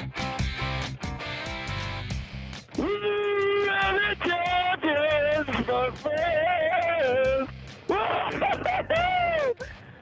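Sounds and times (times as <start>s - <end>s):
man singing and shouting over radio: 2.8s - 9.6s.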